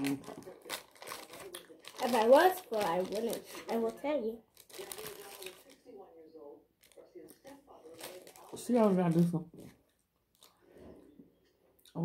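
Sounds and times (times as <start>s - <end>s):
paper wrapper crinkling: 0.0s - 6.1s, 6.8s - 10.8s.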